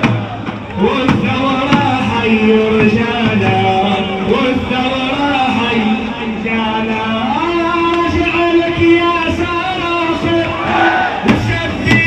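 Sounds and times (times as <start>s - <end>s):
man singing: 0.8s - 9.3s.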